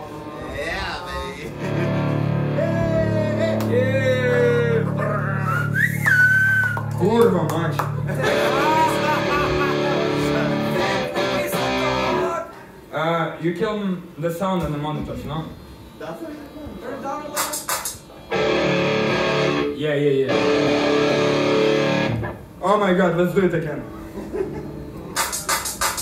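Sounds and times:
electric guitar sustained chords: 1.5s - 5.4s, 6.9s - 12.3s, 18.3s - 22.4s, 24.2s - 25.2s.

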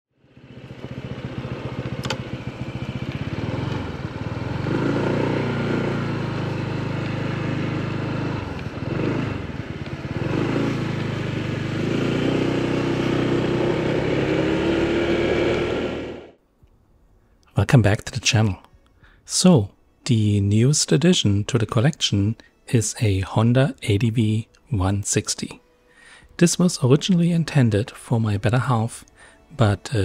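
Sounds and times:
scooter engine running: 0.2s - 16.4s
click: 2.0s - 2.2s.

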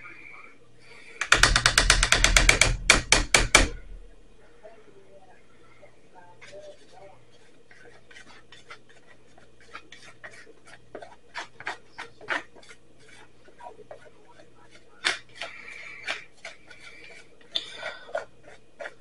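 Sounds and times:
metal utensil scraping plastic tub: 6.4s - 19.0s.

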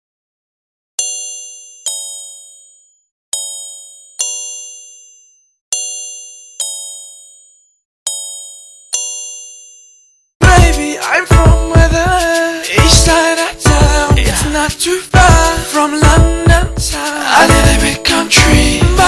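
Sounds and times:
bell-like chime ringing: 1.0s - 11.1s.

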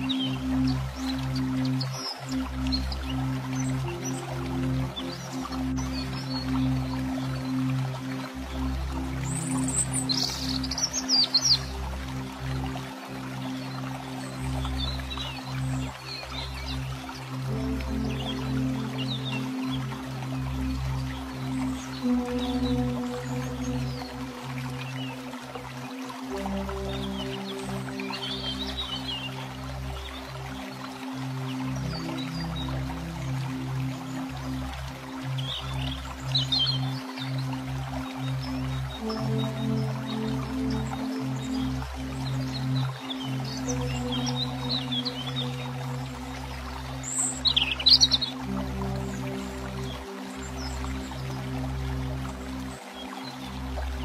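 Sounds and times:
slow ambient music: 0.0s - 54.0s.

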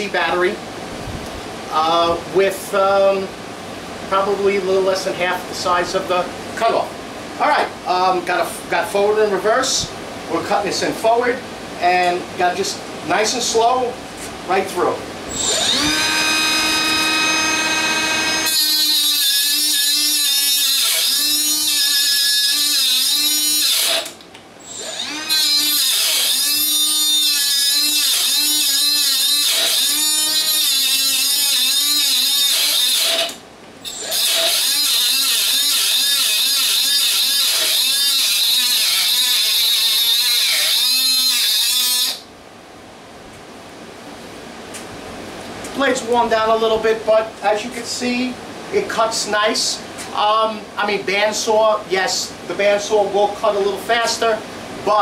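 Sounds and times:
abrasive wheel grinding metal: 15.3s - 42.2s
cutoff saw motor whining: 15.3s - 42.3s.

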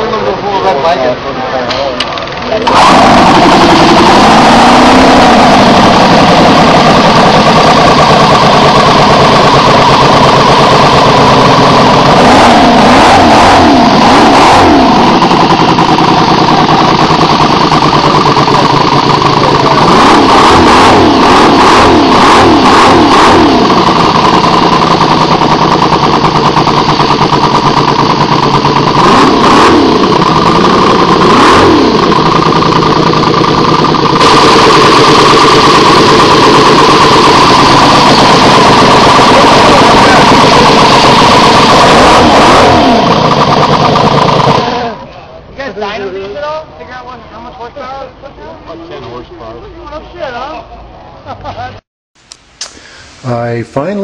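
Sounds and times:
model engine revving: 2.5s - 45.0s.

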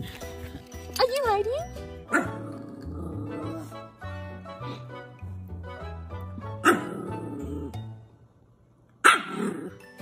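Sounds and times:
background music: 0.0s - 10.0s
dog barking loudly: 6.6s - 7.0s, 9.0s - 9.6s.

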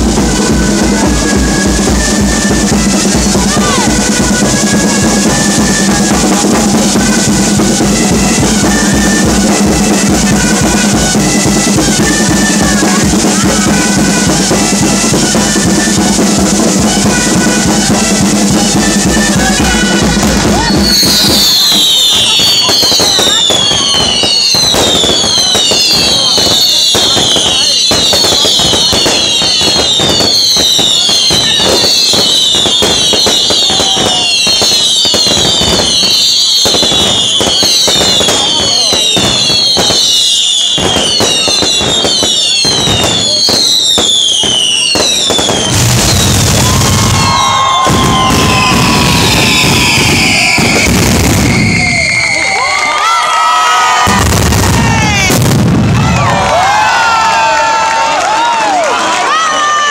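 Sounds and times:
fireworks crackling and banging: 0.0s - 59.9s
whistling fireworks: 0.0s - 59.9s.

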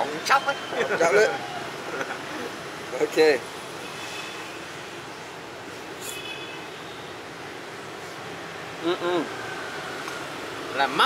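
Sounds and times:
motorbikes and cars passing: 0.0s - 11.0s.

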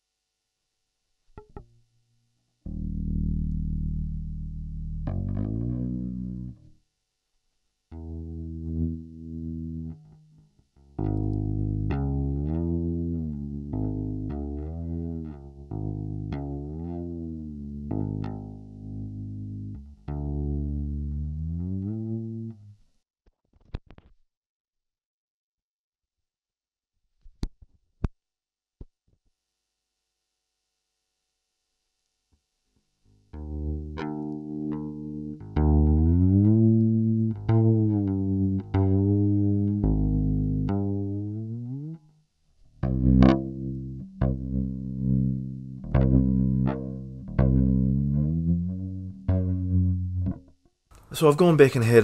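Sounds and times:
electric upright bass plucked: 2.7s - 6.7s, 7.9s - 10.3s, 10.9s - 22.7s, 33.3s - 42.0s, 42.8s - 50.6s.

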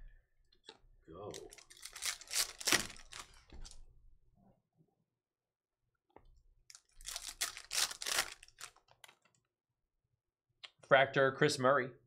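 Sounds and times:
foil pack tearing and crinkling: 1.4s - 3.4s, 6.8s - 9.2s.

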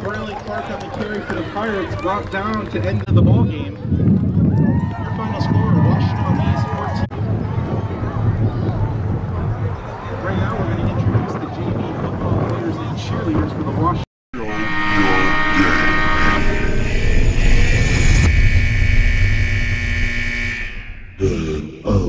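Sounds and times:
voices on football field: 0.0s - 16.6s
electronic music: 14.4s - 22.0s
synth drone over deep rumble: 14.4s - 22.0s.

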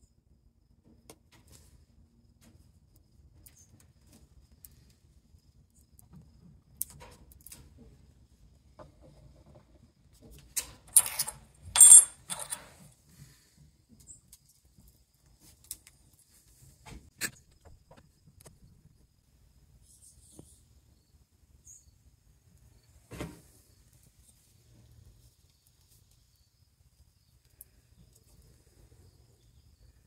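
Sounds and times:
metallic clinks and scrape: 10.9s - 12.8s.

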